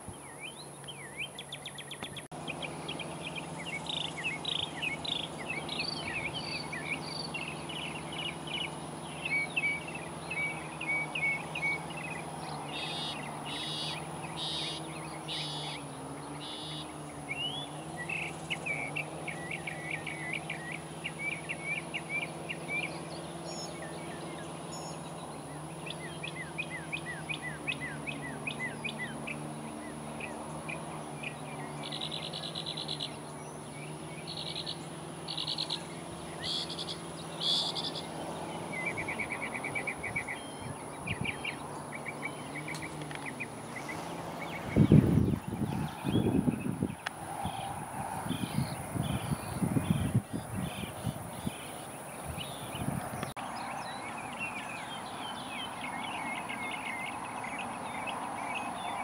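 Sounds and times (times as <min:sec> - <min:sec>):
steady low hum: 0:00.0 - 0:53.1
birds singing and chirping: 0:00.0 - 0:59.0
buzzy bird trills: 0:00.0 - 0:59.0.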